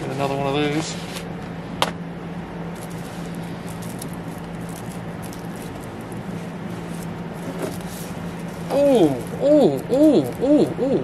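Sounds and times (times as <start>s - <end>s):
low room hum: 0.0s - 11.0s
record sleeves rustling: 2.7s - 10.4s.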